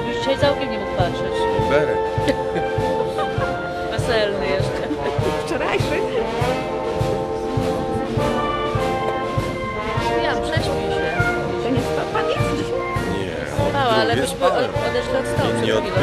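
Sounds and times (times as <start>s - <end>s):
wind band playing: 0.0s - 16.0s.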